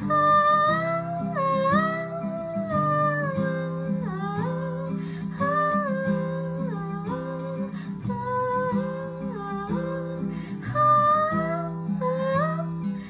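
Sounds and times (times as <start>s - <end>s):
strummed acoustic guitar: 0.0s - 13.0s.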